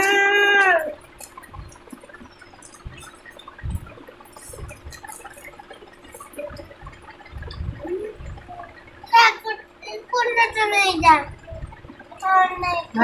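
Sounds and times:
soft low thumps: 0.0 - 13.0.

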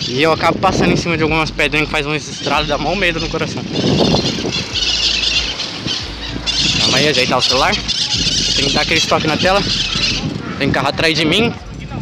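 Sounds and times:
wind: 0.0 - 12.0
bicycle rolling on street: 2.4 - 12.0.

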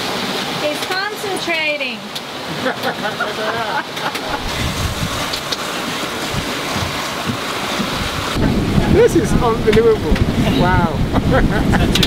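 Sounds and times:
water rushing around a boat: 0.0 - 12.0
person laughing or talking: 2.5 - 4.6, 10.9 - 12.0
rush of wind: 4.1 - 12.0.

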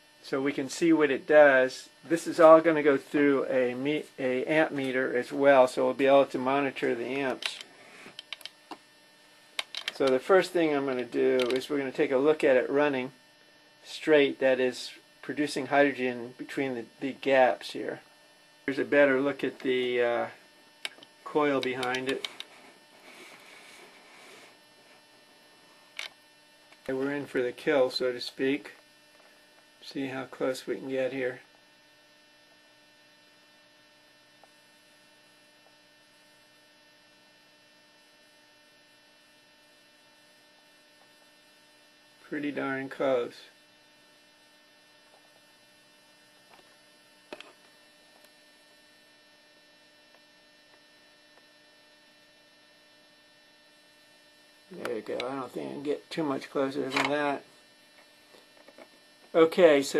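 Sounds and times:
low steady hum: 0.0 - 59.9
sharp click: 7.3 - 8.8, 9.6 - 10.2
zoom motor whirring: 20.8 - 25.0.

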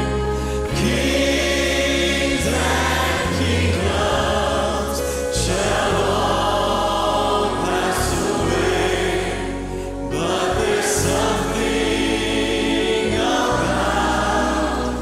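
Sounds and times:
choir singing gospel song: 0.0 - 15.0
piano keyboard and bass chords: 0.0 - 15.0.

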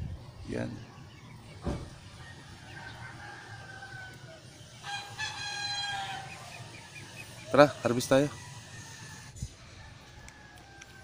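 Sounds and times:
distant rooster crow: 1.4 - 11.0
low thump: 1.6 - 2.0
rooster crowing: 2.1 - 11.0.

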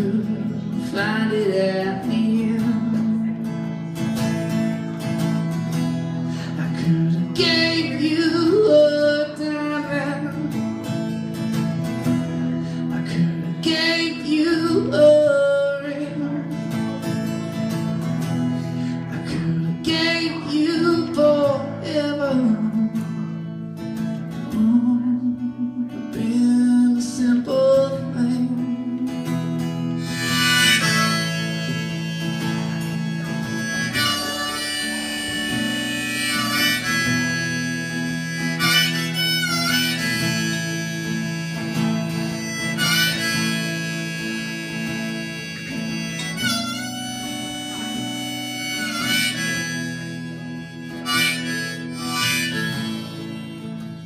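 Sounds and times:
strummed acoustic guitar chords: 0.0 - 54.0
harmonica solo: 29.2 - 54.0.

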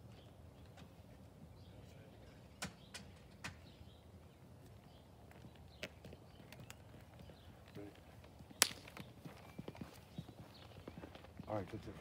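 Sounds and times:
footsteps on asphalt: 4.6 - 12.0.

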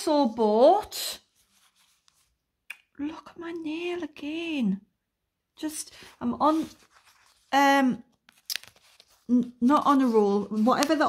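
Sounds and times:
person speaking: 5.6 - 6.8, 9.2 - 11.0.

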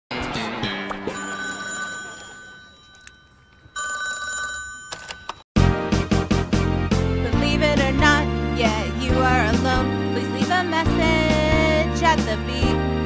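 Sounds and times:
telephone ringing: 1.1 - 5.4.

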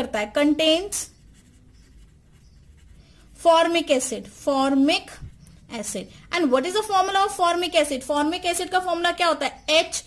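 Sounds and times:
pen scratching on paper: 1.0 - 3.9.

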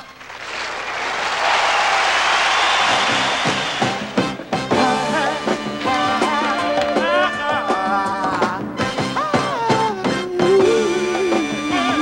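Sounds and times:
noisy wash of band sound: 0.4 - 5.1
drum strokes: 1.4 - 5.0.

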